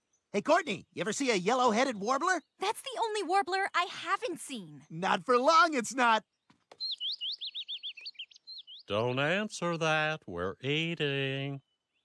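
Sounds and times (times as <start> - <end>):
man imitating bird chirps: 7.9 - 11.6.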